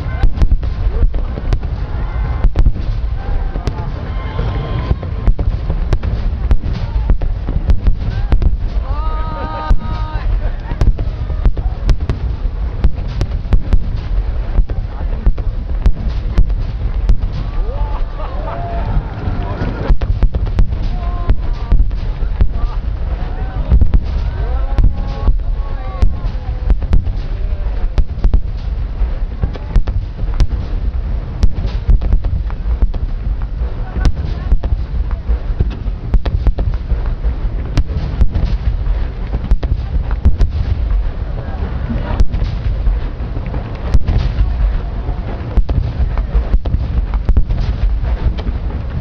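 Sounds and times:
continuous low rumble: 0.0 - 49.0
fireworks bangs and booms: 0.0 - 49.0.

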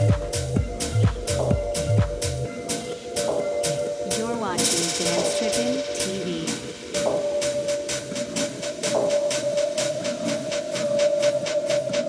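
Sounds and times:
minimal techno music: 0.0 - 12.0.

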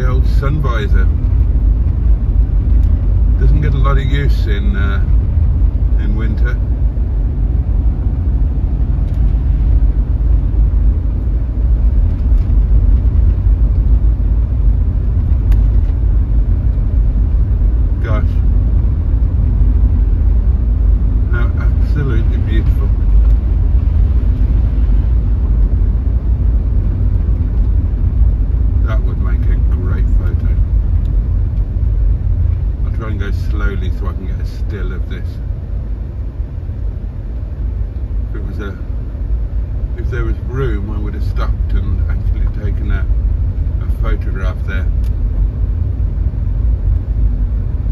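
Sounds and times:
car engine and tyres on wet road: 0.0 - 47.9.

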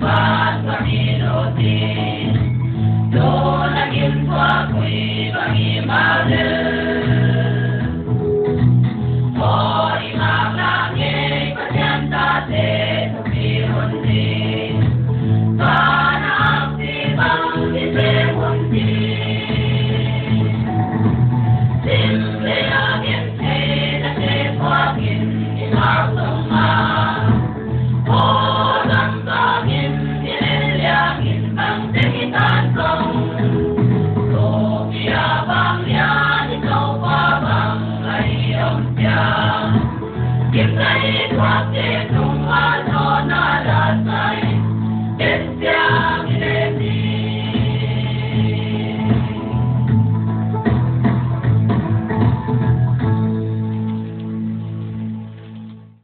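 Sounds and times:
choir singing gospel: 0.0 - 8.1, 9.3 - 21.0, 21.8 - 50.0
instrumental backing with bass: 0.0 - 56.0.

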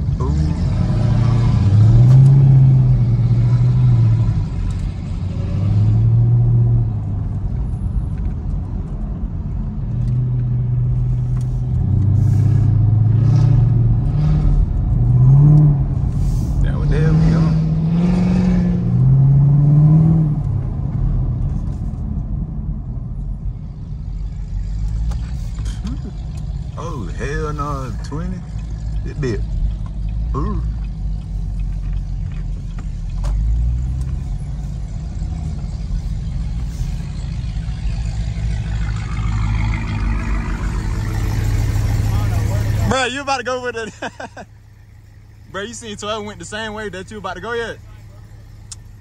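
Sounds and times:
car engine accelerating: 0.0 - 49.0.

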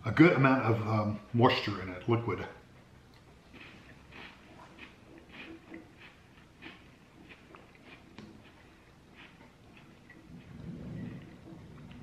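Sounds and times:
chewing cracker crunches: 3.1 - 10.5
low rumble: 10.2 - 12.0.

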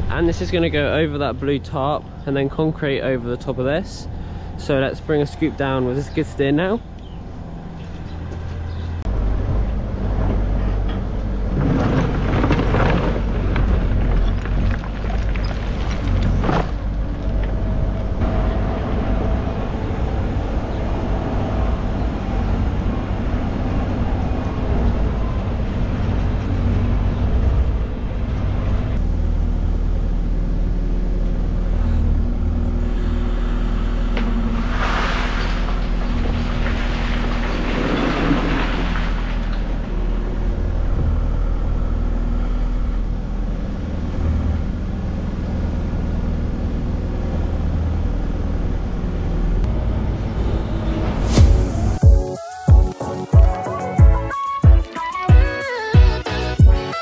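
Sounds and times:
diesel engine running: 0.0 - 54.4
crushed concrete rattling out: 11.5 - 17.0, 34.4 - 39.8.

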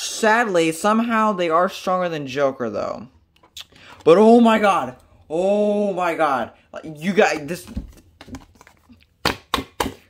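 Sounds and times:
hand and card smacking tabletop: 7.3 - 10.0.

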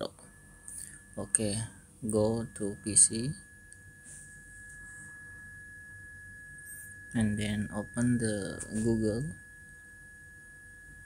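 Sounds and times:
high-pitched electrical whine: 0.0 - 11.0
low hum: 0.0 - 11.0.

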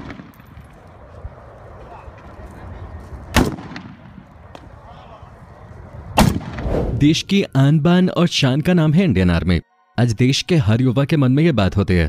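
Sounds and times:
loud gunshots with rumbling echo: 3.3 - 4.2, 6.2 - 6.8.

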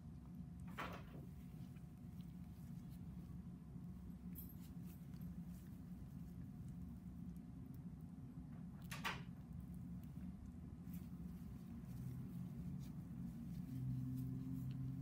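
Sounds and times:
low room hum: 0.0 - 15.0.

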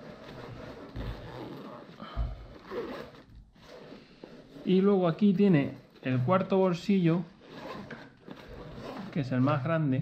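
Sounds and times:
backpack fabric and straps rustling: 0.0 - 9.7.

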